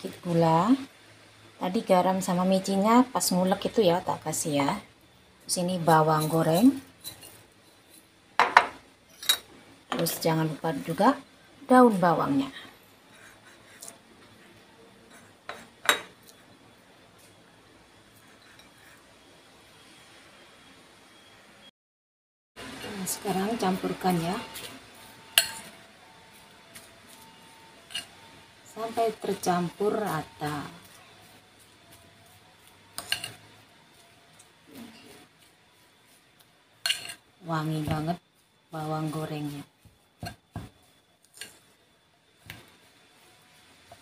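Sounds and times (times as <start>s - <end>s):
kitchenware clinking on ceramic bowl: 8.4s - 10.1s, 25.3s - 25.7s, 33.0s - 33.4s
metal spoon clinking ceramic bowl: 25.3s - 25.7s, 33.0s - 33.4s, 36.8s - 37.2s.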